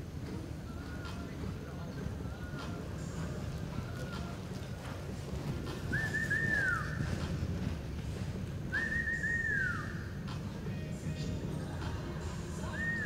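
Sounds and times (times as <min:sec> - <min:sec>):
person whistling: 0:05.9 - 0:06.9, 0:08.7 - 0:09.9.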